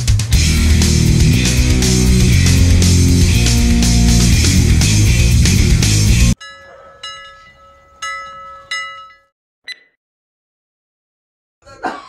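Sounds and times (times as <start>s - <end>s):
rock music: 0.0s - 6.4s
metallic bell ringing: 6.4s - 9.3s.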